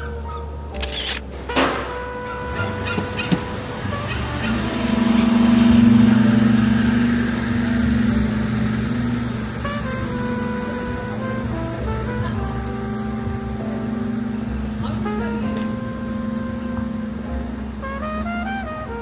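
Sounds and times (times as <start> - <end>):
background music with held notes: 0.0 - 19.0
street traffic: 0.0 - 19.0
large vehicle engine passing: 1.3 - 19.0.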